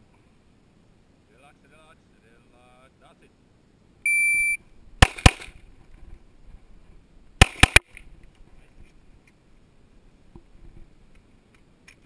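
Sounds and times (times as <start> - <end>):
electronic beep: 4.0 - 4.6
pistol shots: 5.0 - 5.6, 7.4 - 7.9.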